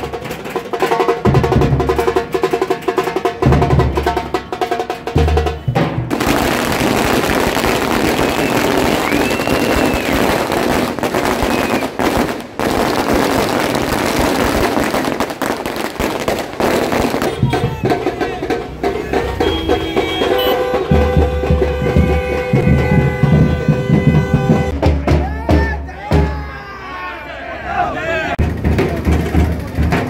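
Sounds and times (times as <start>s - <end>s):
drums beating: 0.0s - 26.9s, 27.8s - 30.0s
firecrackers crackling: 6.0s - 19.6s.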